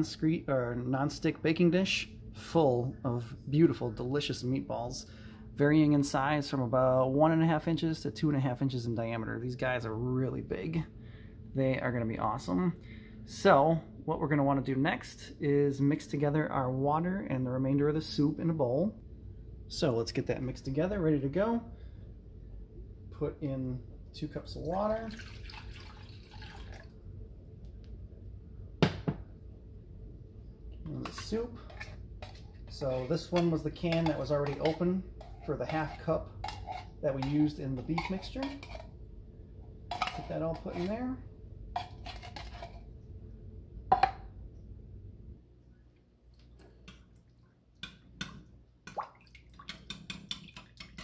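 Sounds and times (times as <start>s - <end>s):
water pouring into glass bowl: 25.0s - 26.9s.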